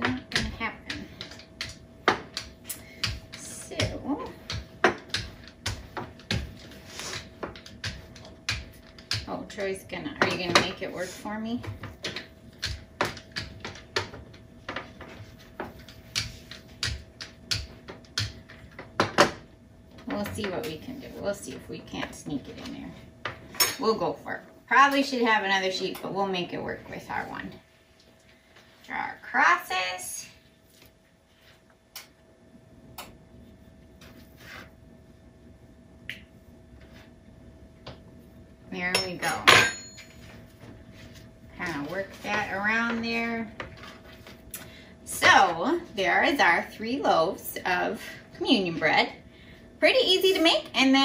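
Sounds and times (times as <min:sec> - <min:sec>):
rolling pin working dough: 0:00.0 - 0:19.4.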